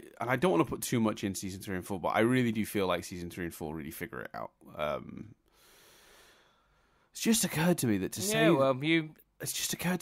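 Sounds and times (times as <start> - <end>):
soft breath drawn in: 5.5 - 7.1
person saying um: 8.2 - 8.7.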